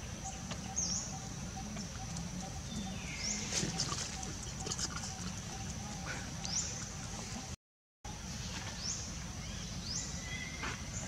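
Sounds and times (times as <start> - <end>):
monkeys squeaking and grunting: 3.4 - 7.4.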